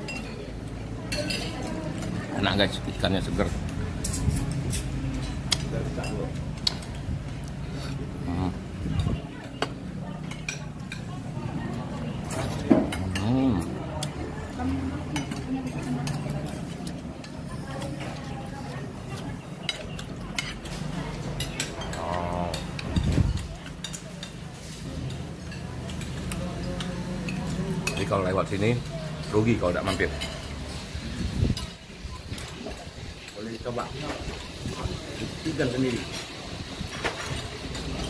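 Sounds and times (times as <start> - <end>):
china plates and spoon clinking: 1.1 - 2.1.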